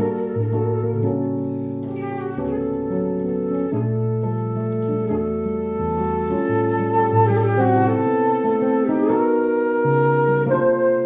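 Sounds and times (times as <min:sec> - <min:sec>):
flute playing a melody: 0:00.0 - 0:11.0.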